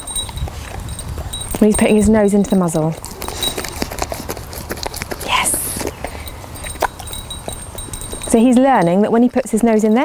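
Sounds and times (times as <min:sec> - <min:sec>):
dog licking: 0:00.0 - 0:10.0.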